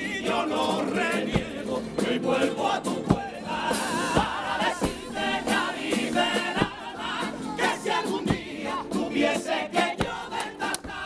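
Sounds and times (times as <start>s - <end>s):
guitar accompaniment: 0.0s - 11.0s
male choir singing in harmony: 0.0s - 11.0s
sharp percussion strokes: 0.8s - 10.2s.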